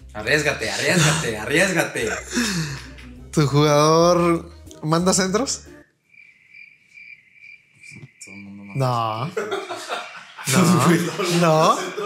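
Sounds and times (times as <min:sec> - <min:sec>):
cricket chirping: 0:05.8 - 0:09.6.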